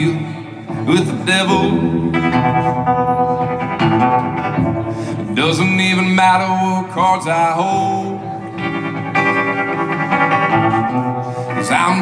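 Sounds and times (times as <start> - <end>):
acoustic guitar strumming chords: 0.0 - 12.0
person singing: 0.0 - 12.0.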